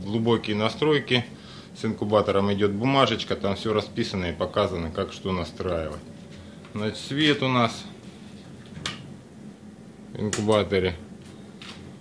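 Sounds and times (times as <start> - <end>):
incubator fans humming: 0.0 - 12.0.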